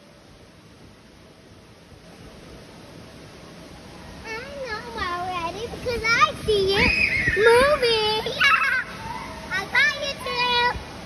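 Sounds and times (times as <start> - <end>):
children squealing while playing: 6.7 - 9.6.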